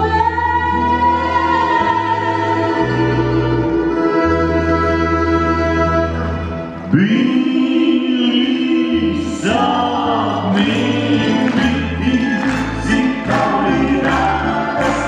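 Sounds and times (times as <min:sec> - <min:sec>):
man and woman singing together: 0:06.9 - 0:15.0
folk band playing: 0:09.5 - 0:15.0.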